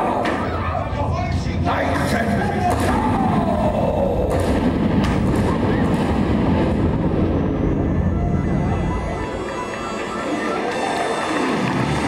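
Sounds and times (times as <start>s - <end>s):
loud low rumble: 0.9s - 9.5s.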